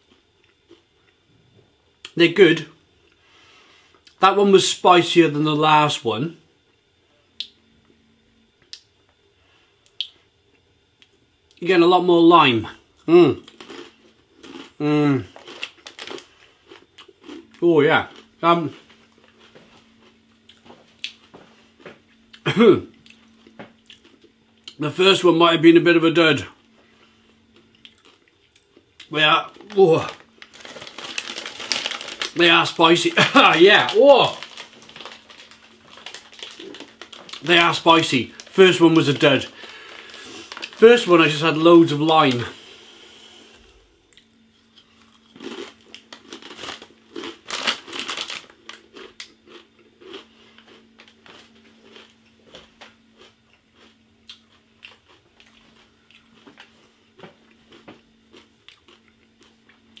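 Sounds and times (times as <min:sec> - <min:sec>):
faint steady hum: 0:00.0 - 1:00.0
tortilla chips crunching: 0:13.2 - 0:21.3, 0:27.5 - 0:42.5, 0:44.6 - 1:00.0.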